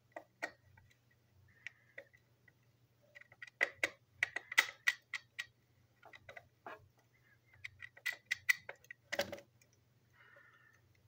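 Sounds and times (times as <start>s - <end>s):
screwdriver clicking and scraping: 7.5s - 9.3s.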